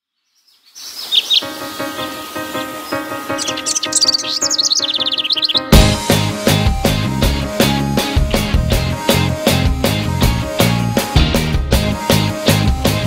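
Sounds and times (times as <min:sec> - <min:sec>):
birds chirping: 0:00.0 - 0:07.4
soft pulsing instrumental music: 0:01.4 - 0:13.0
full band loud hit: 0:05.7 - 0:10.6.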